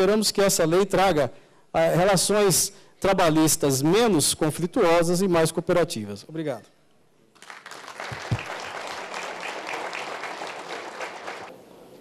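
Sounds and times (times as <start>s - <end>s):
audience applauding: 7.4s - 11.5s.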